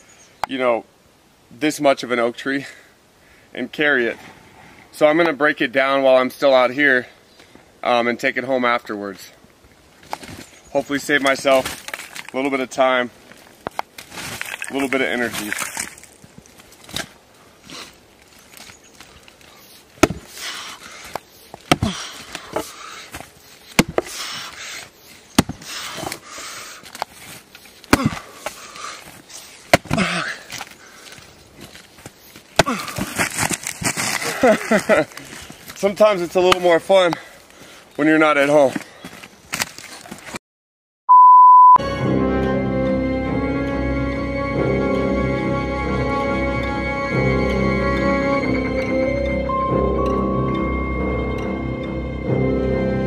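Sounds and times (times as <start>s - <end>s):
wood splitting open: 11.2s - 12.4s, 13.6s - 24.5s, 25.4s - 26.2s, 26.8s - 35.8s, 39.5s - 40.4s
axe striking wood: 20.0s - 20.4s, 21.6s - 22.7s, 23.8s - 24.1s, 25.4s - 26.2s, 27.9s - 28.6s, 29.7s - 30.2s, 32.6s - 33.3s
high electronic beep: 41.1s - 41.8s
music: 41.8s - 53.0s.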